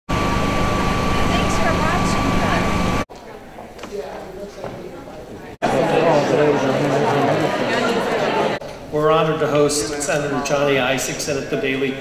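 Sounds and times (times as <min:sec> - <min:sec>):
mechanical hum with high whine: 0:00.1 - 0:05.6.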